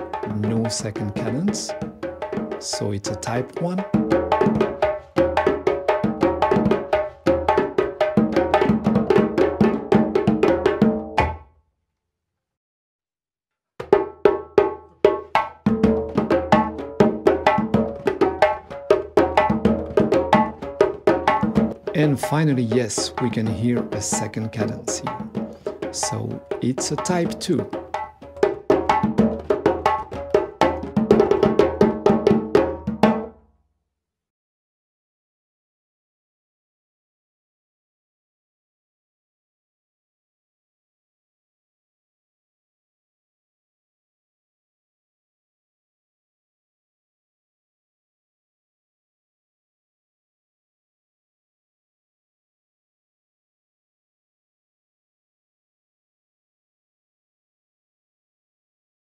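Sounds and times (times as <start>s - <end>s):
djembes playing a groove: 0.0s - 11.4s, 13.8s - 33.4s.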